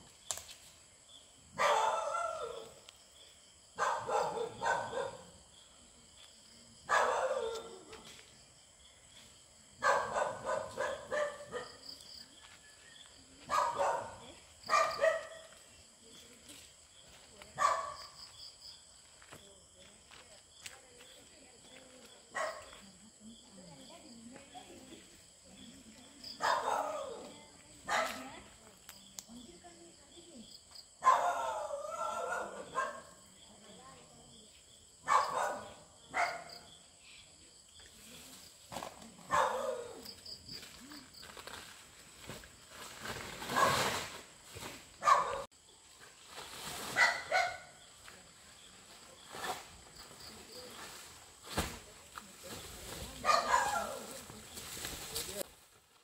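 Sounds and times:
crickets chirring: 0.0s - 55.5s
dogs barking: 1.6s - 2.8s, 3.8s - 5.4s, 6.9s - 8.0s, 9.8s - 11.8s, 13.5s - 15.6s, 17.6s - 18.1s, 26.4s - 28.2s, 31.0s - 33.2s, 35.0s - 36.6s, 39.3s - 40.1s, 45.0s - 45.5s, 47.0s - 47.8s, 53.2s - 54.0s.

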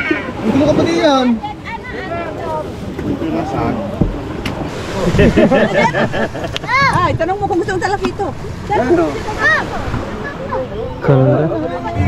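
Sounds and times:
people talking over one another: 0.0s - 12.0s
waves washing in: 0.0s - 12.0s
wind buffeting microphone: 0.0s - 12.0s.

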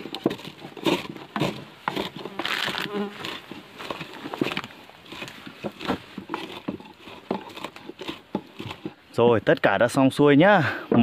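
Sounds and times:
wooden pestle pounding in mortar: 0.0s - 9.0s.

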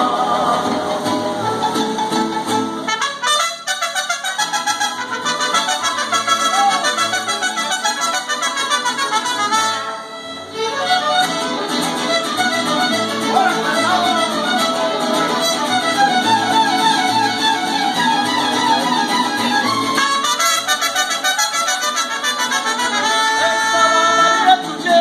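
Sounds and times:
mariachi band playing: 0.0s - 25.0s
strummed guitar: 0.0s - 25.0s
violins and trumpets melody: 0.0s - 25.0s.

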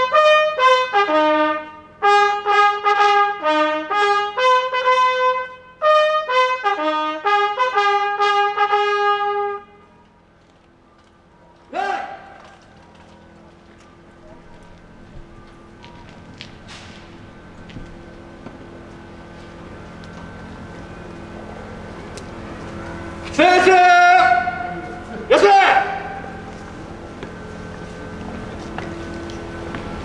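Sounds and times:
trumpet fanfare note: 0.0s - 10.0s, 23.4s - 26.6s
street noise: 0.0s - 30.0s
low hum: 9.6s - 30.0s
person shouting a call: 11.7s - 12.5s, 23.4s - 26.5s.

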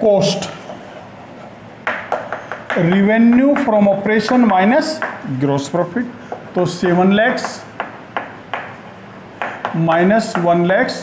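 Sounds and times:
chalk tapping on chalkboard: 1.8s - 5.4s, 6.2s - 11.0s.

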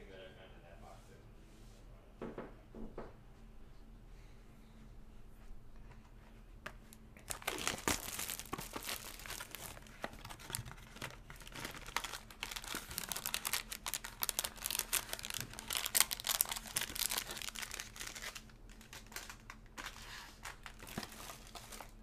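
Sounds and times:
foil wrappers crinkling: 7.2s - 22.0s.

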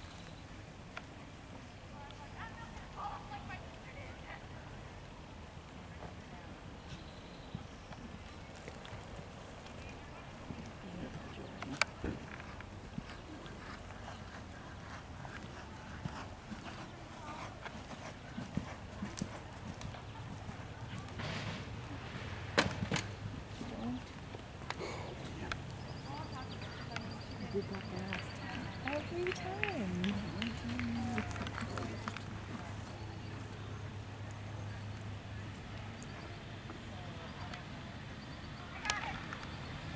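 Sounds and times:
horse hoofbeats cantering on dirt: 7.0s - 21.2s, 22.7s - 33.6s
horse hoofbeats on sand: 10.3s - 21.2s.

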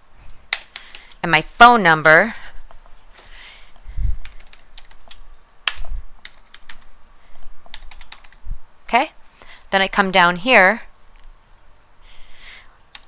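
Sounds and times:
computer keyboard typing: 0.5s - 1.2s, 3.2s - 3.4s, 4.2s - 6.9s, 7.6s - 8.4s.

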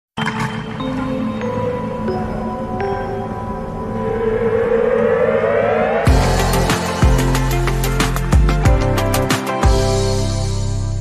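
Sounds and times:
synthesized rising tone: 2.4s - 8.3s.

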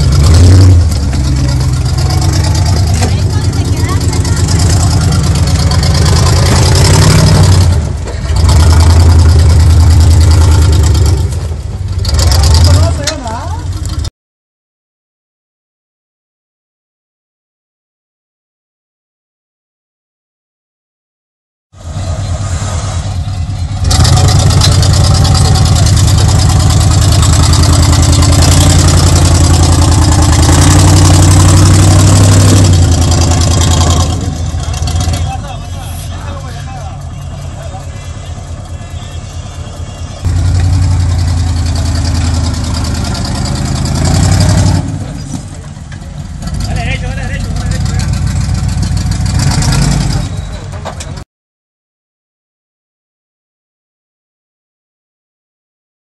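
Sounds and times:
engine revving under load: 0.0s - 11.4s, 12.0s - 13.2s, 21.8s - 35.6s, 40.2s - 45.6s, 46.3s - 50.6s.

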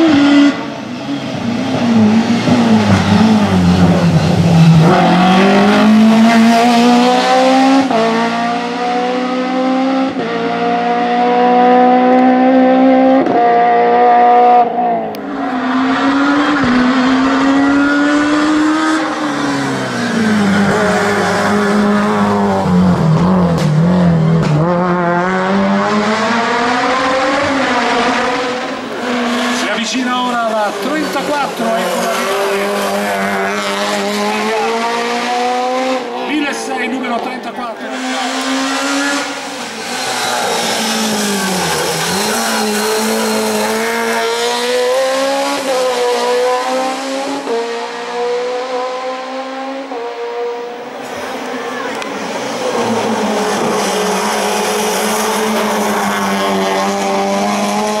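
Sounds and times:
race car engine at full throttle: 0.0s - 58.0s.

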